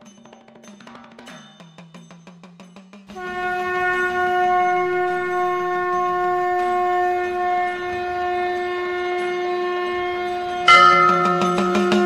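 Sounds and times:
long steady wind instrument note: 3.2 - 12.0.

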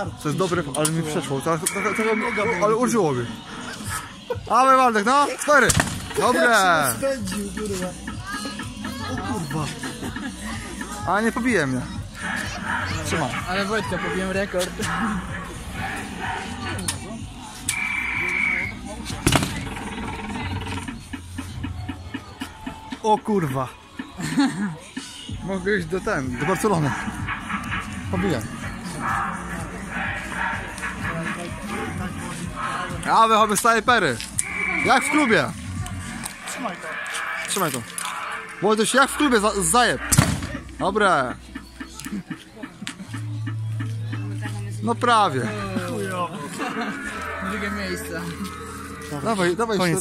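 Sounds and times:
electronic beep: 1.6 - 2.8, 17.7 - 18.8, 34.4 - 35.5
short electronic tones: 1.7 - 2.7.

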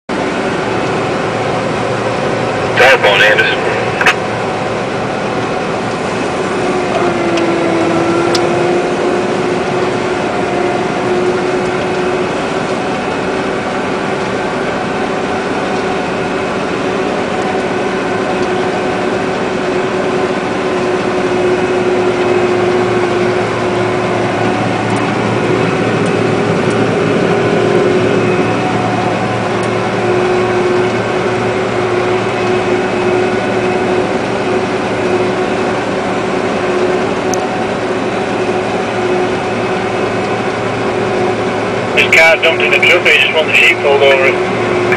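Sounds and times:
combine harvester engine drone: 0.1 - 44.9
steady whining tone: 0.1 - 44.9.

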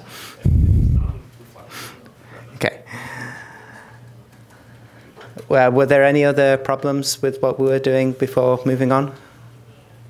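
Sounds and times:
steady low hum: 0.4 - 1.6.

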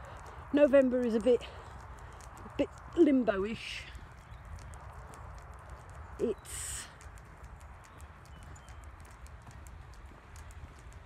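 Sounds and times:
footsteps on wet tarmac: 0.0 - 11.0
low steady microphone rumble: 0.0 - 11.0.

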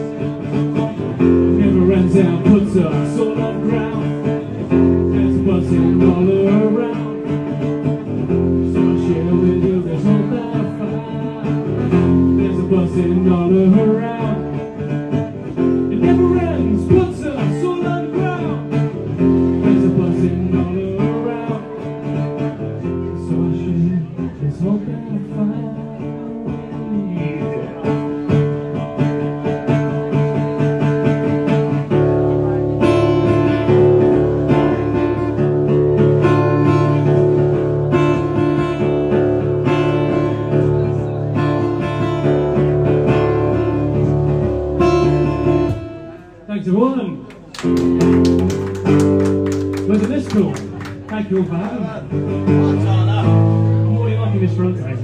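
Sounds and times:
guitar playing chords and notes: 0.0 - 46.5, 47.1 - 55.0.

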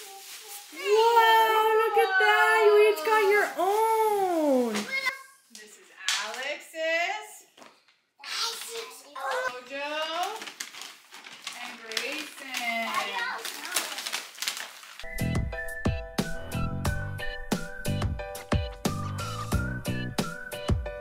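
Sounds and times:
paper bags crinkling: 0.0 - 5.0, 8.5 - 15.1
young children's excited voices: 0.8 - 5.3, 8.2 - 9.5.

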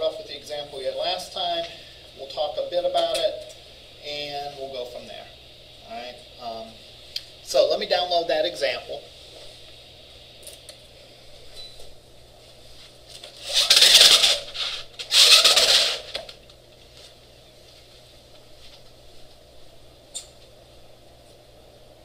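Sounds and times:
low steady room hum: 0.0 - 22.0
projection screen being pulled down: 13.3 - 16.3.

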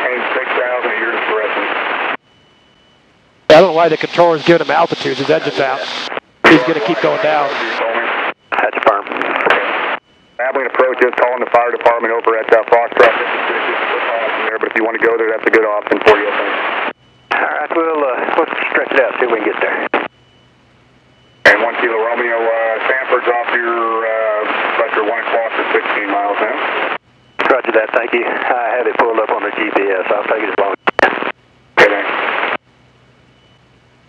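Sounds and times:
radio controller voice: 0.0 - 1.8, 3.5 - 20.0, 21.5 - 26.8, 27.4 - 32.5
faint steady high tone: 2.2 - 5.8.

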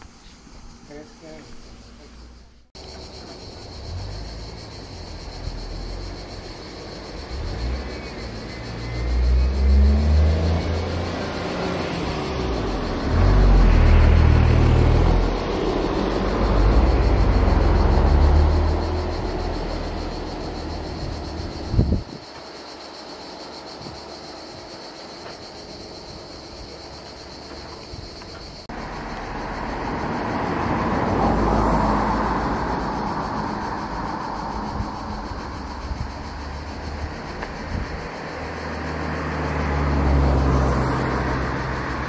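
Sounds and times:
vehicle engine rumbling: 0.0 - 42.0.

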